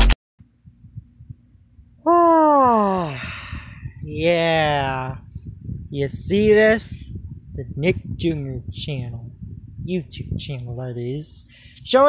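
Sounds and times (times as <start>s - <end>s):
faint low rumble: 0.4s - 12.0s
person groaning: 2.1s - 3.8s.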